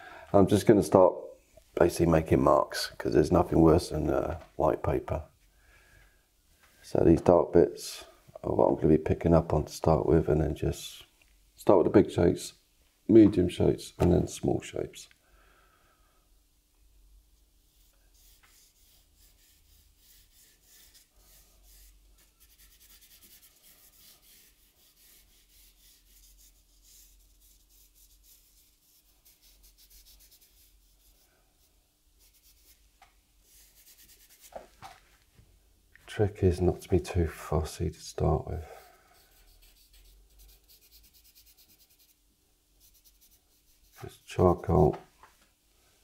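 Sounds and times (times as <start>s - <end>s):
charcoal scratching on paper: 17.7s - 32.8s, 33.5s - 34.6s, 38.8s - 42.2s, 42.8s - 44.2s.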